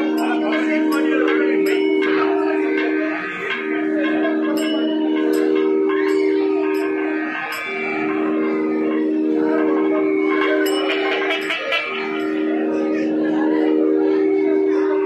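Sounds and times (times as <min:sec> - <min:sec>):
gliding melodic line: 0:00.0 - 0:15.0
reed-like drone: 0:00.0 - 0:15.0.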